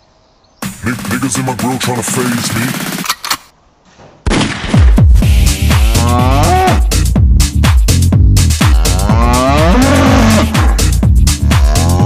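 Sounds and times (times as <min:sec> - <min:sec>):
electronic dance music: 0:00.6 - 0:03.0, 0:05.2 - 0:12.0
cow mooing: 0:05.9 - 0:07.0, 0:08.6 - 0:12.0.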